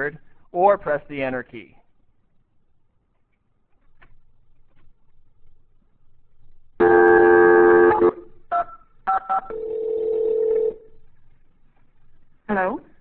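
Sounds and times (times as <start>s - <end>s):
telephone dial tone: 9.1s - 10.8s
telephone ringback tone: 9.1s - 10.9s.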